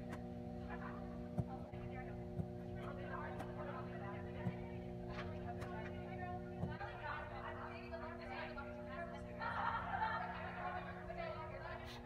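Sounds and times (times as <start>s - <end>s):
steady hum: 0.0s - 12.0s.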